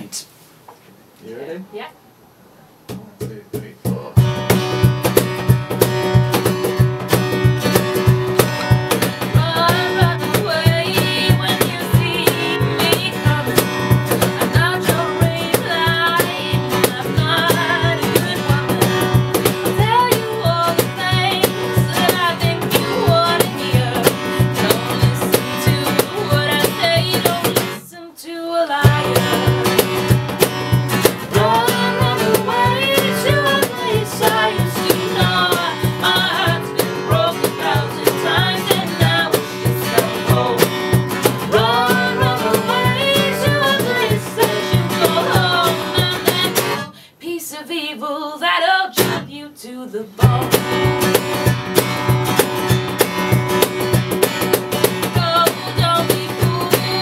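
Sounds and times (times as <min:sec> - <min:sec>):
acoustic guitar playing: 0:03.9 - 0:27.9, 0:28.8 - 0:47.1, 0:48.9 - 0:49.4, 0:50.2 - 0:57.0
person singing: 0:19.8 - 0:27.8, 0:31.3 - 0:47.2, 0:48.0 - 0:50.9, 0:55.1 - 0:57.0.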